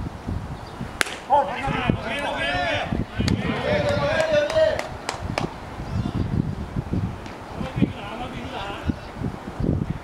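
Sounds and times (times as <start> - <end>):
sharp crack of baseball: 1.0 - 1.4
players shouting: 1.0 - 6.3.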